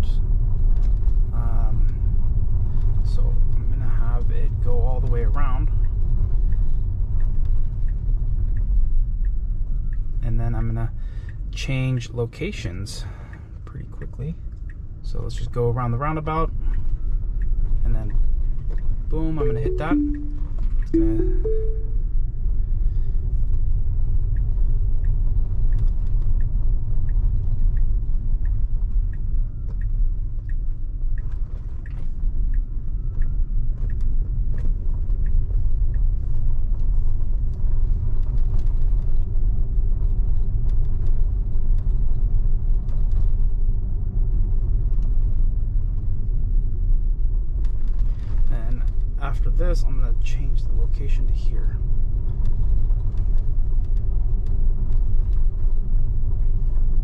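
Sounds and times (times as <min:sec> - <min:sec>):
road and tyre rumble: 0:00.0 - 0:11.6, 0:23.4 - 0:49.2, 0:51.8 - 0:57.0
turn signal ticking: 0:05.7 - 0:10.2.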